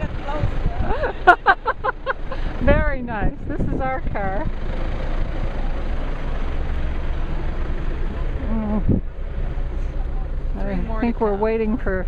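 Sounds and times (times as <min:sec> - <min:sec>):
wind noise on microphone: 0:00.0 - 0:01.3, 0:02.3 - 0:04.5, 0:08.6 - 0:09.1
off-road vehicle engine running: 0:00.0 - 0:12.0.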